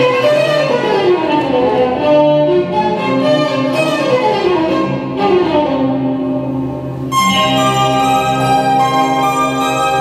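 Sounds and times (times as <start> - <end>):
violin section melody: 0.0 - 10.0
sustained lower strings: 1.1 - 10.0.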